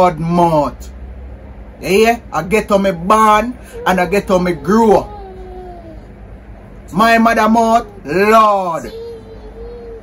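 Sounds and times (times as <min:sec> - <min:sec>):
low hum: 0:00.0 - 0:10.0
toddler vocalizing: 0:03.6 - 0:06.2, 0:08.8 - 0:10.0.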